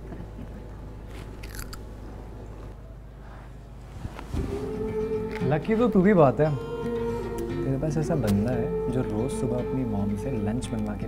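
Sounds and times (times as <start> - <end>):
crunching bite into snack: 1.2 - 1.9.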